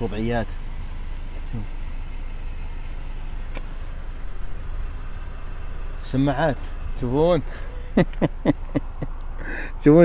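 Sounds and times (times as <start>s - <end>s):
car engine low rumble: 0.0s - 10.0s.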